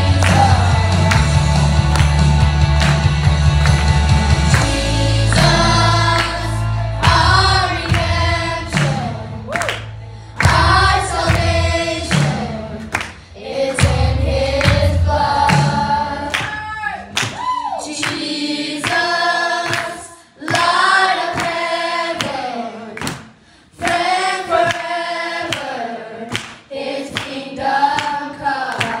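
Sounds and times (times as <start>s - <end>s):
children singing: 4.4s - 9.5s, 10.4s - 16.4s, 17.8s - 23.0s, 23.8s - 29.0s.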